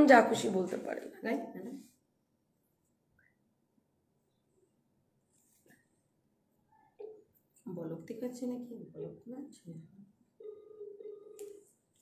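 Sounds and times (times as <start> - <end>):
electronic telephone tone: 10.4 - 11.7.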